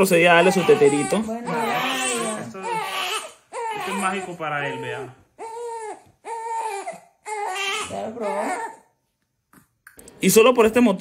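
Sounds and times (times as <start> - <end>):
newborn baby crying: 0.0 - 9.0.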